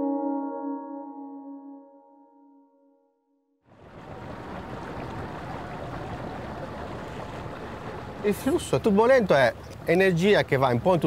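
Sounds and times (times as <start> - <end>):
water washing against shore: 3.7 - 11.0.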